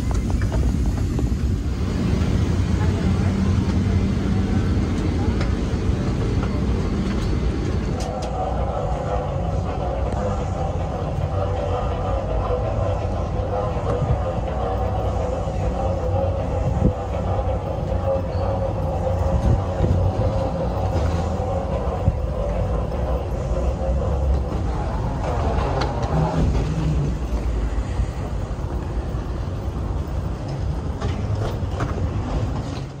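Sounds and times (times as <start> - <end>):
low rumble and hum of terminal: 0.0 - 33.0
faint voices: 1.9 - 30.2.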